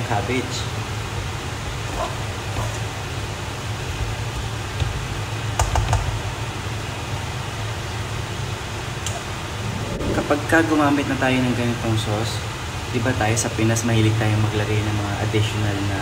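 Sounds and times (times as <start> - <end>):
fan hum: 0.0 - 16.0.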